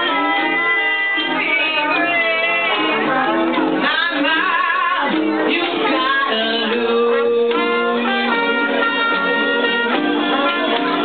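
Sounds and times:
woman singing: 0:00.0 - 0:08.0
acoustic guitar: 0:00.0 - 0:11.0
small jazz band: 0:00.0 - 0:11.0.

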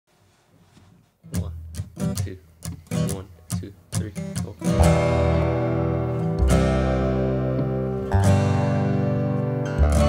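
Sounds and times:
guitar strumming chords: 0:01.3 - 0:10.0.

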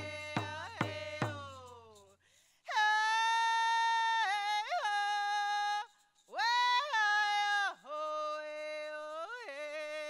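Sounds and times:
hand drum beat: 0:00.0 - 0:01.7
woman singing: 0:00.0 - 0:10.0.

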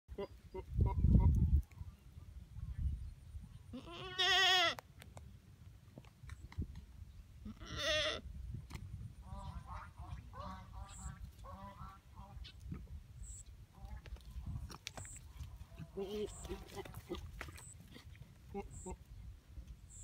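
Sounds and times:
goats bleating: 0:03.8 - 0:04.8, 0:15.8 - 0:17.2.

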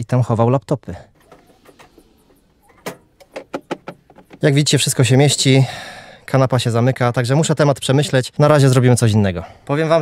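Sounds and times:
quick clicks and light knocks: 0:02.8 - 0:04.5.

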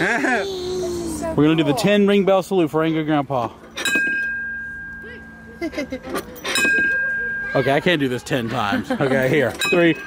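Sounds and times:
metal chime tube ringing: 0:03.8 - 0:08.3.

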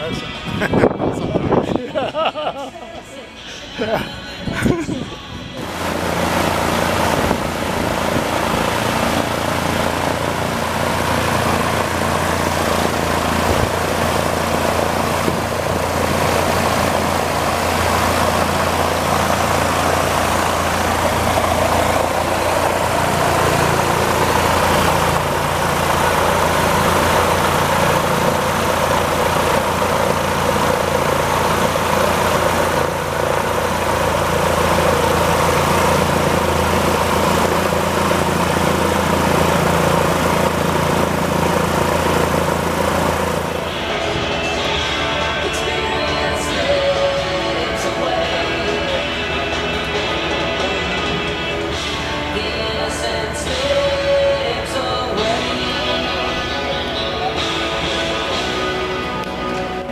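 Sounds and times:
loud engine-like drone: 0:00.0 - 0:01.9, 0:03.5 - 0:59.9
deep constant hum: 0:00.0 - 0:59.9.

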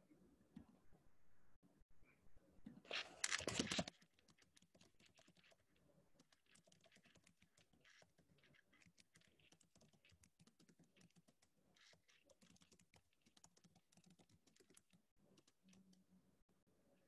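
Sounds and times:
computer keyboard typing: 0:03.2 - 0:05.6, 0:06.2 - 0:16.0.

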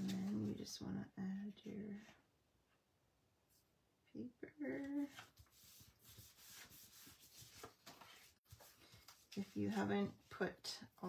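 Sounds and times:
paper rubbing and rustling: 0:05.0 - 0:10.4.

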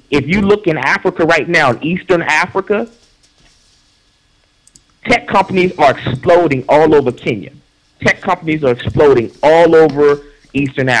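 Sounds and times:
low room hiss: 0:00.0 - 0:11.0
small sharp clicks: 0:04.6 - 0:05.0.

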